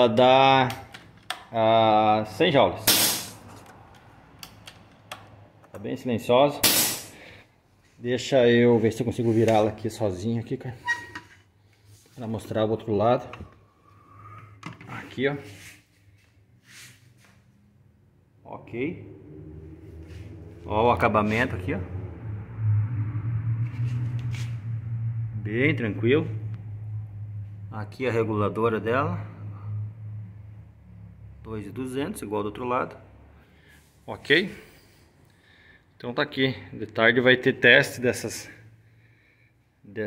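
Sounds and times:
steady low hum: 17.8s - 35.0s.

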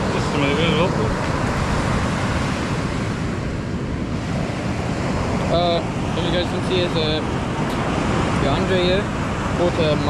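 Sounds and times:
ocean surf on beach: 0.0s - 10.0s
wind rumbling on microphone: 0.0s - 10.0s.

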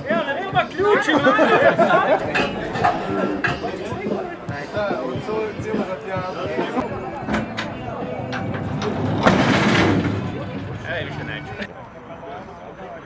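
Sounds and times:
people talking in background: 0.0s - 13.0s.

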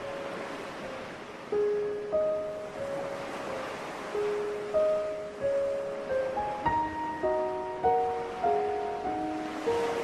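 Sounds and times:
ocean surf washing: 0.0s - 10.0s
soft music of long notes: 0.0s - 10.0s.

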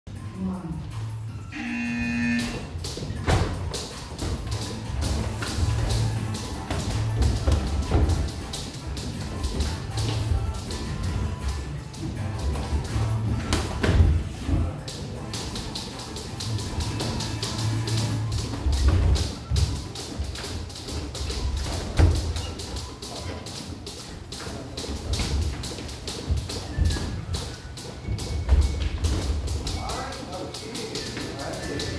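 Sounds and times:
music with steady bass: 0.1s - 15.5s, 16.3s - 19.3s.

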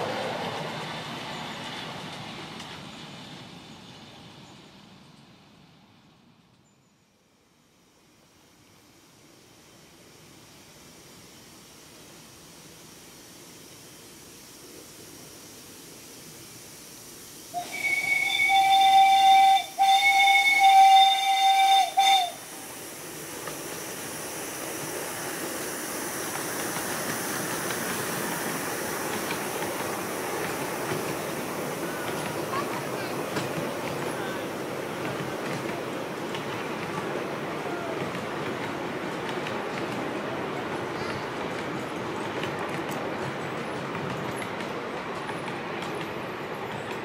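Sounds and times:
train rumbling on rails: 0.0s - 6.8s, 7.5s - 47.0s
steam locomotive whistle: 17.5s - 22.8s.

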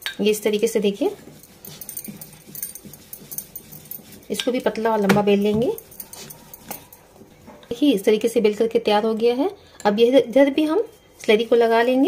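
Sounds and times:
bangles clicking: 1.3s - 4.7s, 5.3s - 7.1s.

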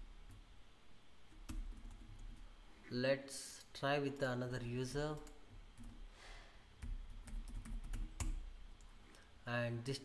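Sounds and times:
typing on computer keyboard: 6.8s - 8.4s.

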